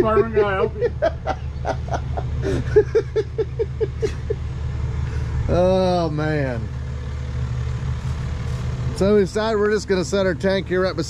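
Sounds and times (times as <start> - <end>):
men laughing: 0.0 - 4.5
steady low hum: 0.0 - 11.0.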